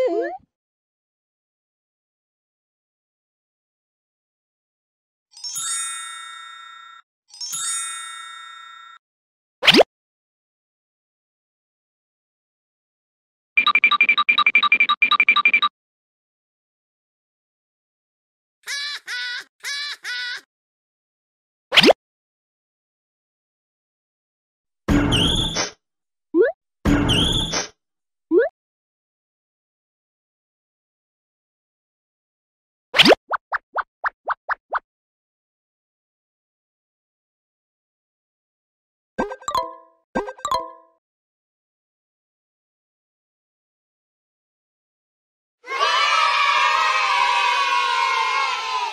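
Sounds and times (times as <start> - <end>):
cartoon pop with rising sweep: 9.6 - 9.9, 21.7 - 22.0, 33.0 - 34.8
quick rising bloops: 26.4 - 26.6.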